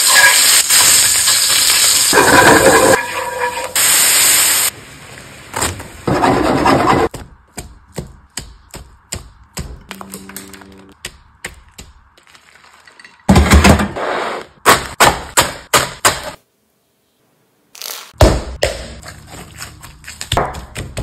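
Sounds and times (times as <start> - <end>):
meat patty sizzling in a pan: 0.0 - 4.7.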